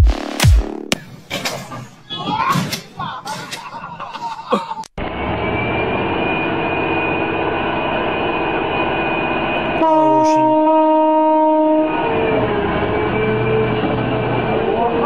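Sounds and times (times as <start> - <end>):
excavator engine drone: 5.0 - 15.0
loud horn blast: 9.6 - 15.0.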